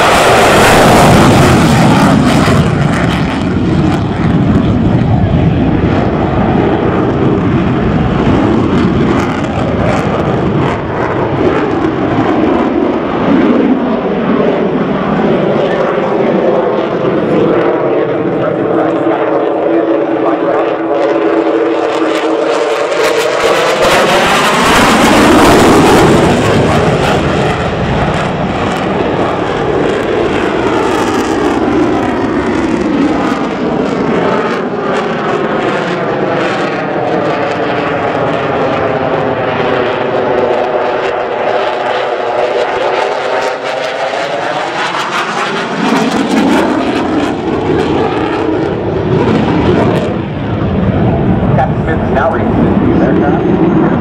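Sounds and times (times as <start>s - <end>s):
fighter jet roaring past: 0.0s - 54.0s.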